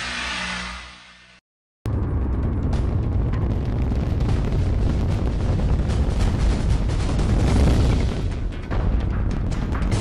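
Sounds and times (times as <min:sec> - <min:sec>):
loud low rumble: 0:01.9 - 0:09.4.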